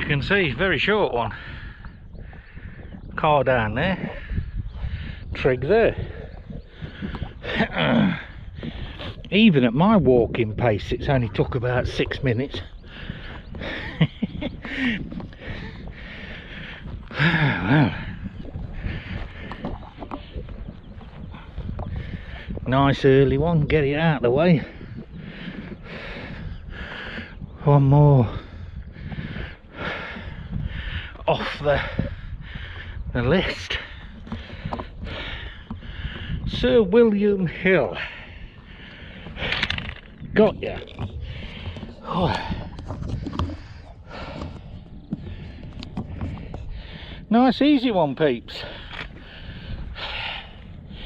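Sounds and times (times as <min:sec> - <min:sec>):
wind rumble on microphone: 0:00.0 - 0:51.0
person breathing heavily: 0:12.8 - 0:19.6, 0:24.8 - 0:27.4, 0:28.2 - 0:31.2, 0:31.8 - 0:33.1, 0:33.8 - 0:36.5, 0:37.9 - 0:39.8, 0:41.1 - 0:47.3, 0:48.6 - 0:51.0.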